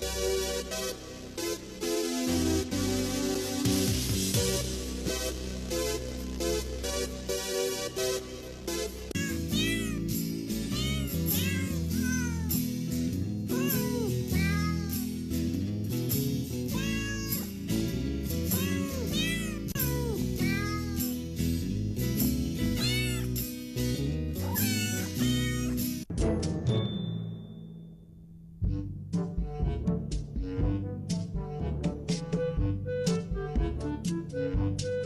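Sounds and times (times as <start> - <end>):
background music: 0.0 - 35.0
cat meowing: 9.1 - 12.6, 13.5 - 15.1, 16.7 - 17.6, 18.5 - 21.1, 22.7 - 23.4, 24.4 - 25.9.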